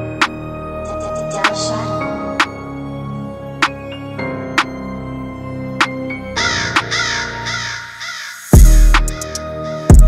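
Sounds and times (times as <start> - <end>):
heavy bass and drums: 8.6 - 9.2.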